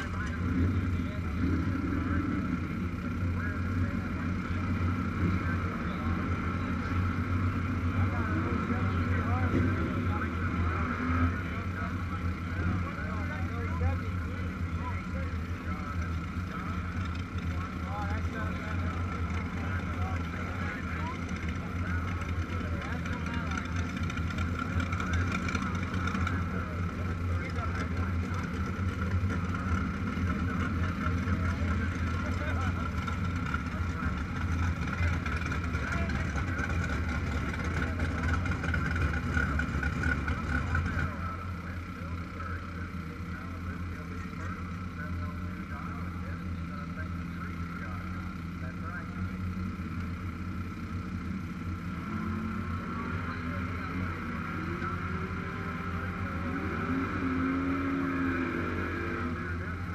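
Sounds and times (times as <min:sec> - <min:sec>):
low engine drone: 0:00.0 - 0:59.9
people talking in background: 0:00.0 - 0:59.9.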